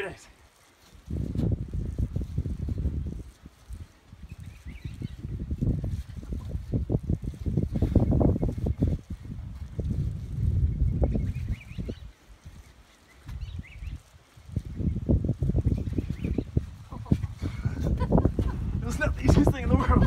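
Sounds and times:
wind buffeting microphone: 0.7s - 20.0s.

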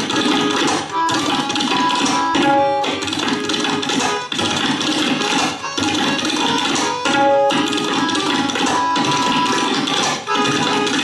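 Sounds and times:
harmonium melody: 0.0s - 11.0s
tabla strokes: 0.0s - 11.0s.

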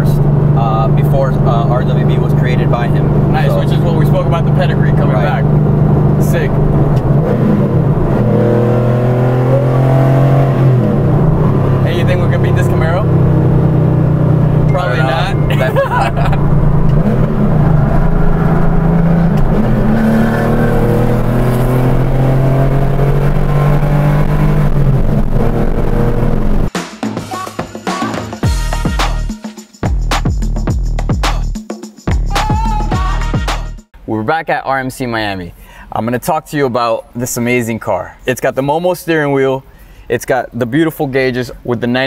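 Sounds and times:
car engine accelerating hard: 0.0s - 26.7s.

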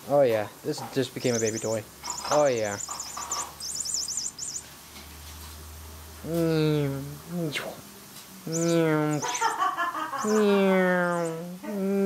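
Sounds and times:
high-pitched electronic chirps: 1.3s - 4.7s, 8.5s - 9.4s.

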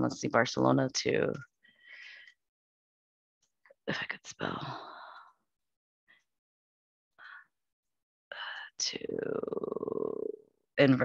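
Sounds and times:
woman speaking: 0.0s - 1.4s, 3.9s - 4.9s, 8.8s - 11.0s
woman whispering: 8.3s - 9.8s.

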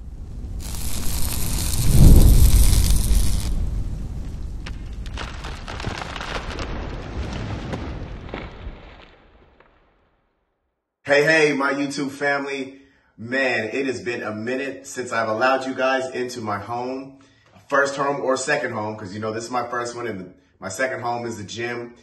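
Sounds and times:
high hiss burst: 0.0s - 3.9s
rushing whoosh: 0.0s - 4.1s
crackles and ticks of sparks: 0.0s - 9.2s
deep boom: 0.6s - 5.8s.

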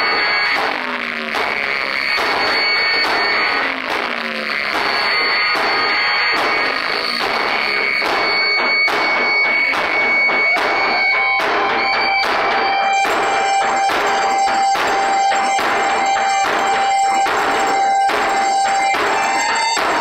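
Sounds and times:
dense electronic noise: 0.0s - 20.0s
low steady tone: 11.1s - 20.0s.

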